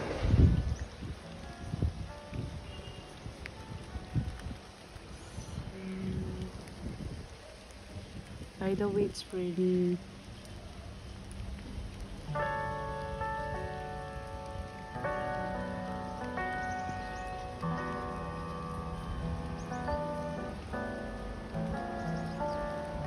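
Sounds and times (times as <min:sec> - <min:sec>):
slow sustained chord music: 0:00.0 - 0:06.7, 0:11.2 - 0:23.0
steady rain: 0:00.0 - 0:23.0.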